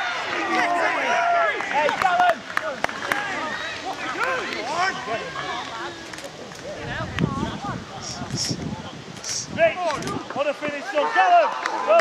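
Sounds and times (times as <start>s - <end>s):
men shouting and calling out: 0.0s - 12.0s.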